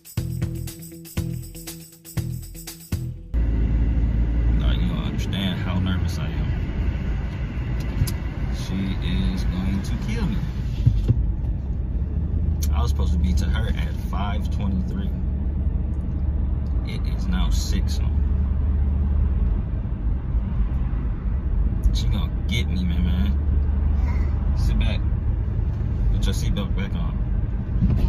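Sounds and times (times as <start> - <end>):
car cabin road and engine rumble: 3.3 - 28.0.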